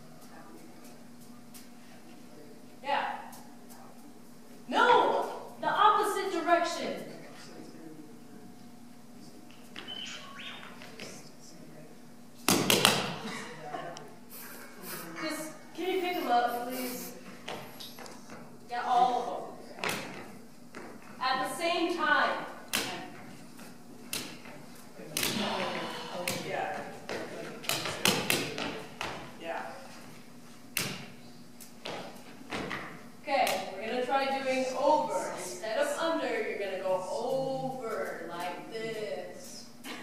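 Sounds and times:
balls bouncing on hard floor: 9.5 - 11.2, 12.4 - 13.2, 17.4 - 18.5, 19.8 - 21.5, 22.7 - 29.5, 30.7 - 31.2, 31.8 - 34.2.

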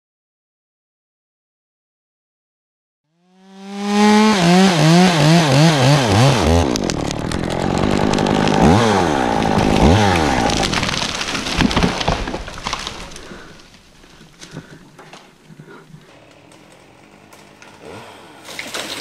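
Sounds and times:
chainsaw revving and cutting wood: 3.1 - 14.8, 15.5 - 18.5
wood cracking: 3.8 - 19.0.

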